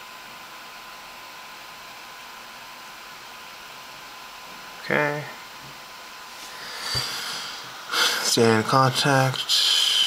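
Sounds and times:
steady low hiss: 2.2 - 10.0
person speaking: 8.0 - 10.0.

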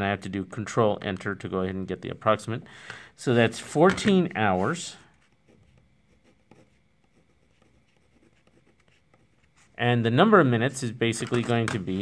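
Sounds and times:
pen scratching on paper: 4.6 - 9.8.

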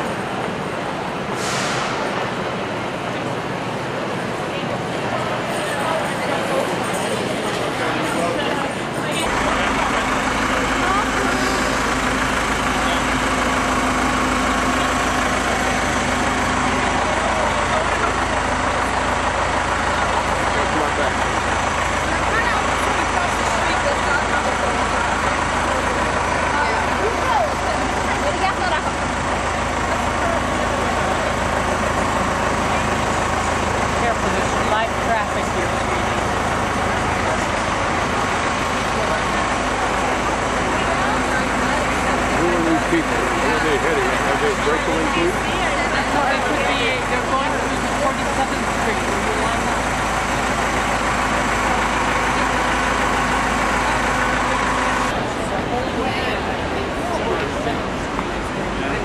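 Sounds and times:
crowd chatter: 0.0 - 59.0
large vehicle engine idling: 0.0 - 59.0.

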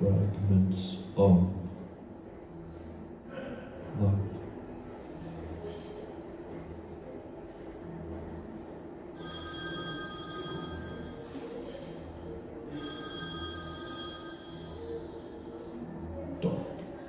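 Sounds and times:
electronic ringing tone: 9.2 - 15.8.

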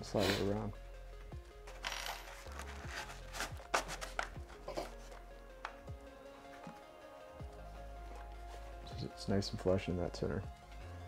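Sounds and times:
background music: 0.0 - 11.0
magazine scraping into pouch: 2.0 - 4.4.

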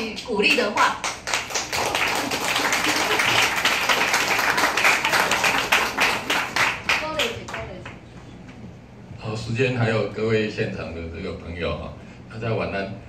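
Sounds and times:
audience clapping: 0.0 - 8.0.

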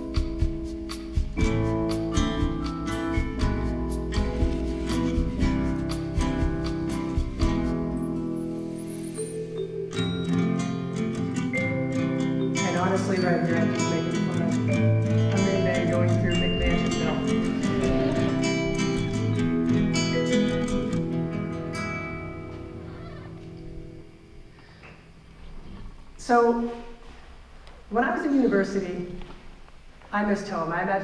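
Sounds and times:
plucked acoustic guitar music: 0.0 - 8.8, 9.5 - 24.4.

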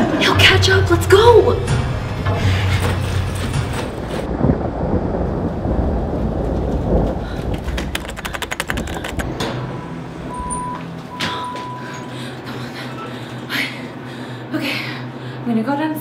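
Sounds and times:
low rumbling drone: 0.0 - 15.3
rapid clicks: 7.4 - 9.6.

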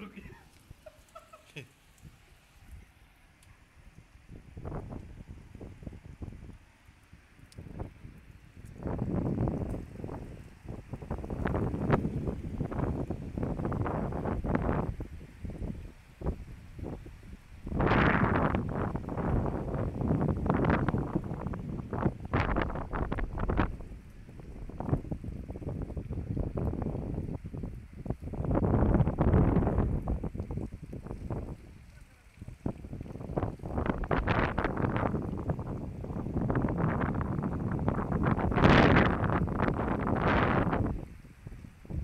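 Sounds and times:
wind buffeting microphone: 1.9 - 42.0.

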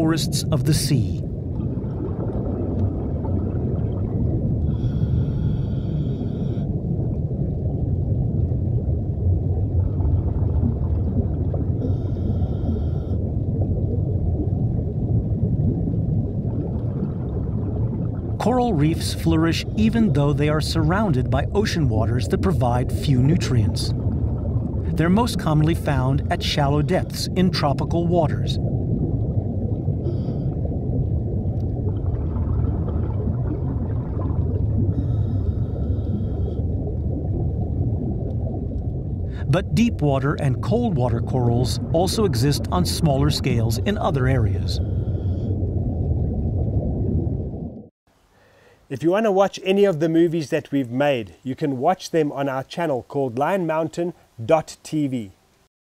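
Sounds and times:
low underwater rumble: 0.0 - 47.9.

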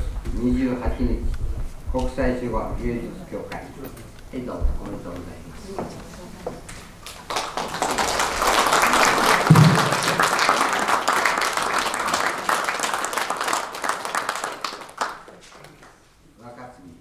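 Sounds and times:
audience applauding: 7.0 - 16.1.

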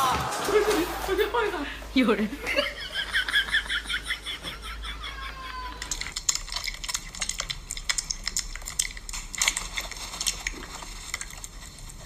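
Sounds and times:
kittens chewing raw meat: 5.8 - 12.0.

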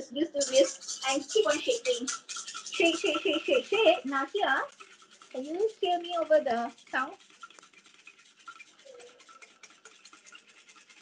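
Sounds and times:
whisk beating cream in bowl: 0.0 - 11.0.

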